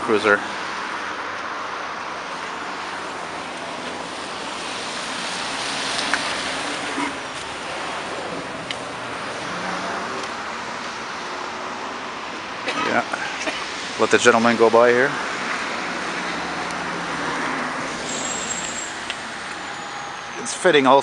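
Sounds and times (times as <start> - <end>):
car passing: 0.0 - 21.0
road traffic noise: 0.0 - 21.0.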